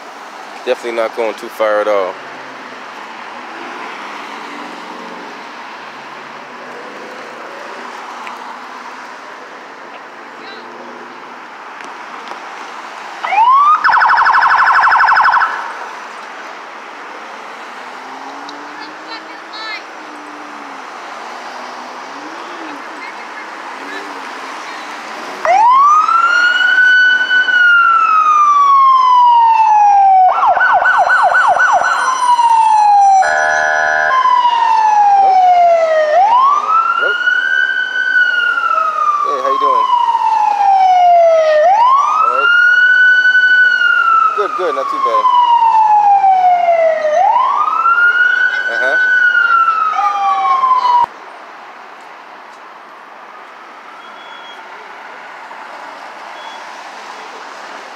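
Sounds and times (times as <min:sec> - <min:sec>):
police siren wailing: 0:13.2 - 0:16.0, 0:25.4 - 0:51.1.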